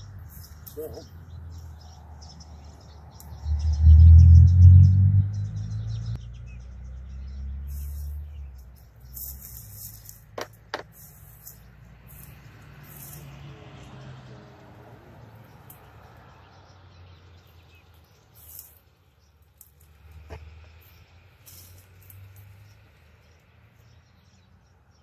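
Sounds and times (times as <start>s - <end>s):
birds chirping: 0.0s - 25.0s
vehicle engine rumble passing: 0.0s - 25.0s.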